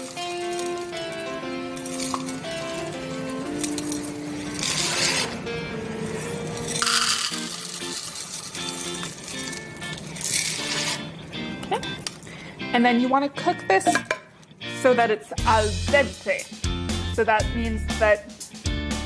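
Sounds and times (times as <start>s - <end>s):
dry pasta rattling into a cup: 0.0s - 5.2s, 6.6s - 11.0s
background music held-note melody: 0.0s - 19.0s.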